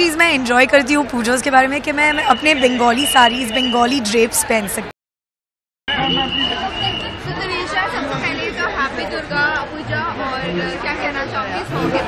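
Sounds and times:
crowd chatter: 0.0s - 4.9s, 5.9s - 12.0s.

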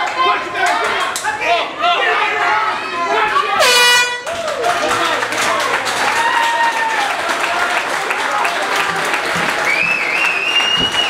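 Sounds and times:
announcer long drawn-out call: 3.6s - 4.3s.

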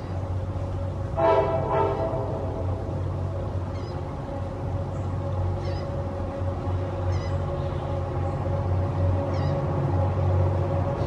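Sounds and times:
steady low hall hum: 0.0s - 11.0s.

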